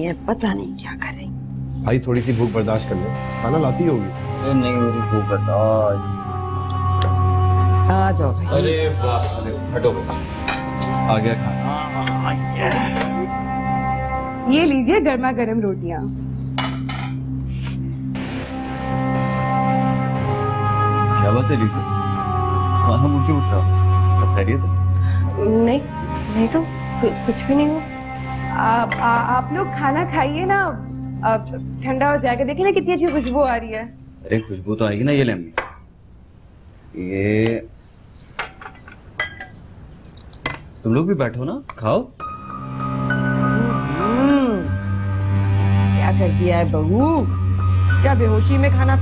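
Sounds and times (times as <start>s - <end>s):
sustained background music chord: 0.0s - 35.5s, 42.2s - 49.0s
plates and cutlery clattering: 16.6s - 17.2s, 38.4s - 40.7s.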